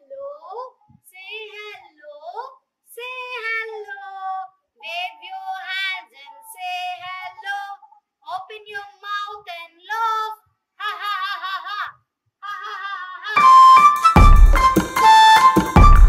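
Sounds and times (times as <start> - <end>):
woman and children singing: 3.0 - 10.4.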